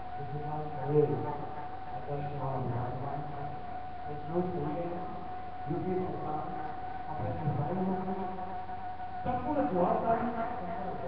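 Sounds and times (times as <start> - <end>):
high buzzing hum: 0.0 - 11.0.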